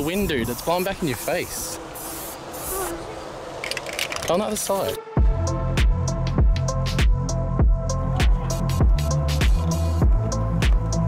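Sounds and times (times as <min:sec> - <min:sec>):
spray can hissing: 0:00.0 - 0:03.0.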